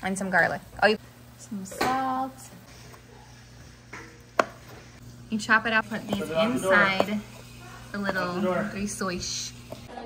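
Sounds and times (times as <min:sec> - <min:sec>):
knife chopping on cutting board: 0:04.4 - 0:04.7.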